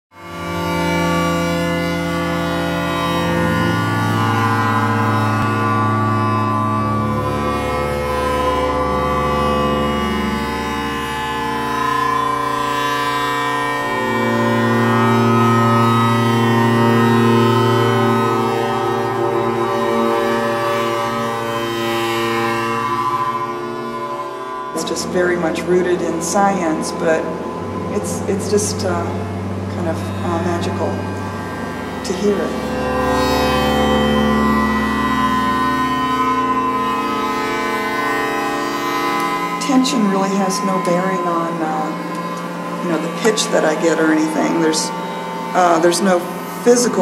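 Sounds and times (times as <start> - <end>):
bowed string drone: 0.1 - 47.0.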